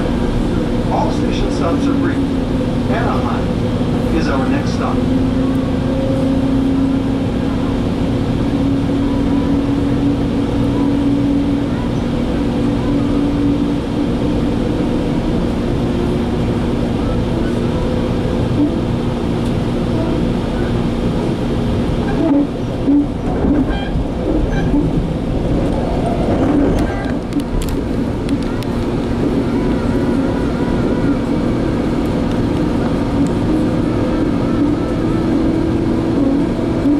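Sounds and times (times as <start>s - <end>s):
droning hum: 0.0s - 36.9s
train wheels rumbling on rails: 0.0s - 36.9s.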